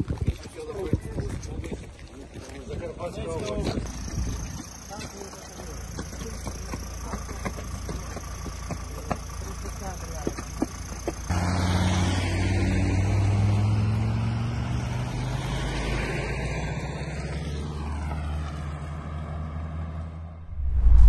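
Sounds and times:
road noise: 0:00.0 - 0:21.0
vehicle engine running: 0:03.4 - 0:15.1
loud low rumble: 0:20.4 - 0:21.0.

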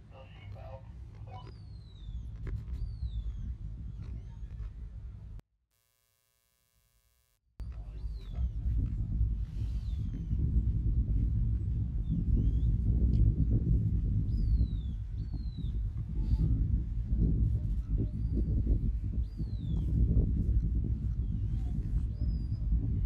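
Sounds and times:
wind rumble on microphone: 0:00.0 - 0:05.4, 0:07.6 - 0:23.0.

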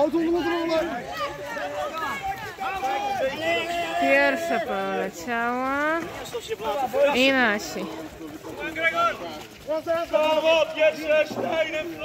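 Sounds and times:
people shouting: 0:00.0 - 0:05.4, 0:06.0 - 0:12.0.

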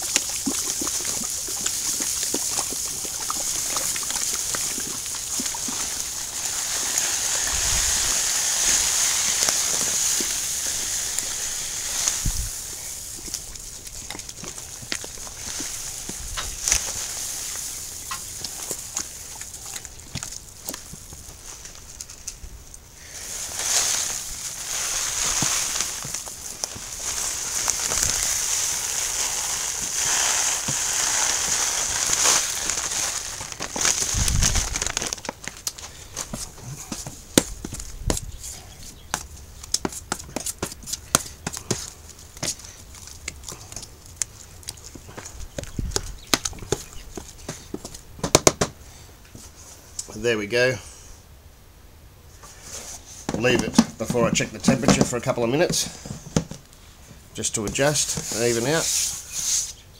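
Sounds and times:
grain pouring hiss: 0:00.0 - 0:37.8, 0:52.3 - 0:59.9.

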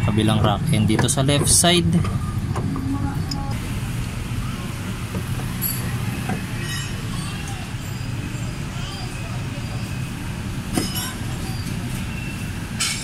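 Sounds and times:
low rumble of traffic: 0:00.0 - 0:13.0.

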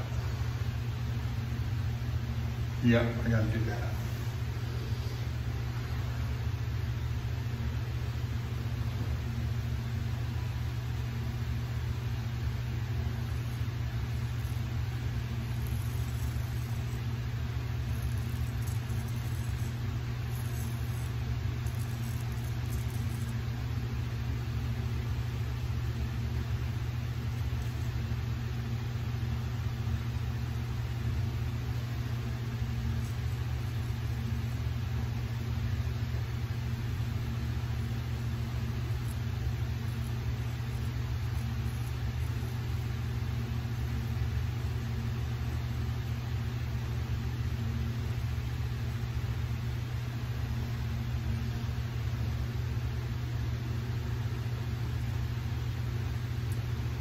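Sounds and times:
low mechanical hum: 0:00.0 - 0:57.0
faint high scratches: 0:13.1 - 0:23.5, 0:36.8 - 0:44.9.

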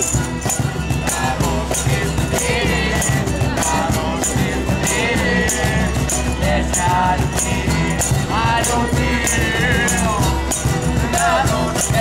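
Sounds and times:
frame drum beat: 0:00.0 - 0:12.0.

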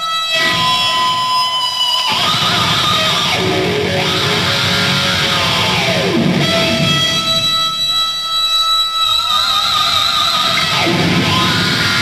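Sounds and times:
distorted electric guitars: 0:00.0 - 0:12.0
held electric guitar notes ringing: 0:00.0 - 0:12.0.

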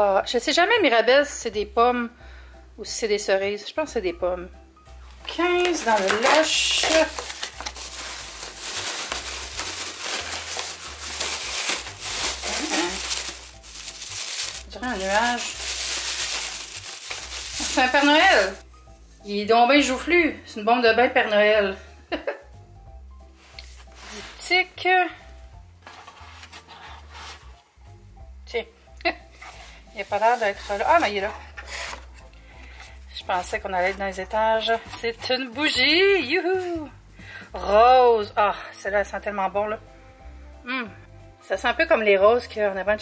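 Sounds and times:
quiet background music: 0:00.0 - 0:43.0
shredded paper rustling: 0:05.7 - 0:18.6, 0:30.0 - 0:32.1
skin rubbing on cardboard: 0:25.9 - 0:27.5, 0:29.4 - 0:32.2.

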